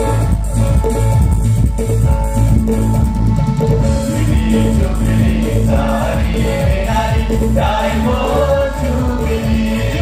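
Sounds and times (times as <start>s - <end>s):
drum kit: 0.0s - 10.0s
electric bass: 0.0s - 10.0s
keyboard: 0.0s - 10.0s
men singing into microphones: 3.8s - 10.0s.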